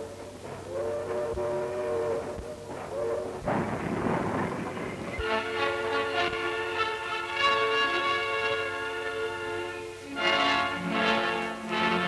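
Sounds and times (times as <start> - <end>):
orchestral music with strings: 0.0 - 12.0
rail noise: 0.0 - 12.0
steam locomotive rushing steam: 0.0 - 12.0.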